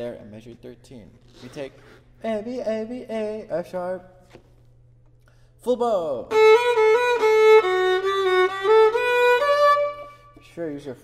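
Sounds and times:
solo violin phrase: 0:06.3 - 0:10.5.

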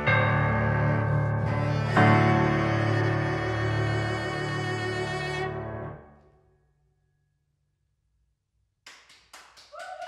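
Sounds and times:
people clapping: 0:08.8 - 0:10.0.

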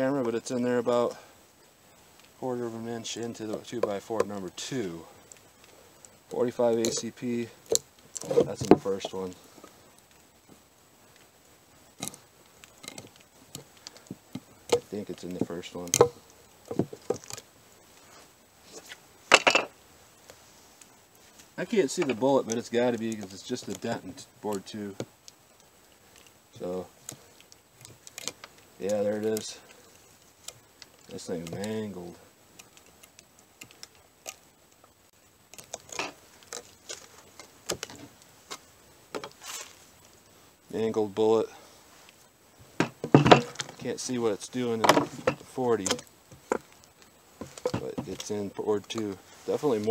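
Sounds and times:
wood scraping and clattering: 0:06.3 - 0:09.8, 0:12.0 - 0:17.4, 0:18.1 - 0:19.7, 0:21.6 - 0:24.2, 0:35.6 - 0:38.6, 0:42.8 - 0:46.8, 0:47.4 - 0:49.9
wooden boards knocking: 0:42.8 - 0:43.7.

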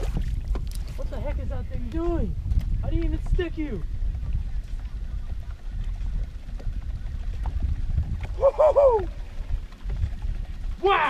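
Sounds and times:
wind and water rumble: 0:00.0 - 0:11.0.

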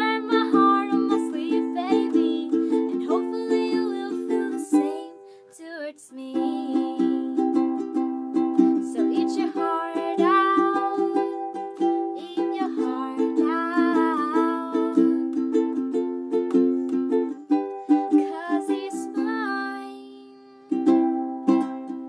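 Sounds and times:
woman singing: 0:00.0 - 0:07.8, 0:08.6 - 0:15.6, 0:17.9 - 0:20.8
ukulele strumming chords: 0:00.0 - 0:22.0.

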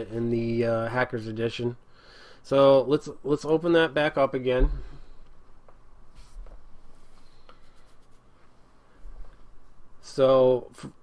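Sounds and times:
rubbing sounds: 0:06.0 - 0:09.8.

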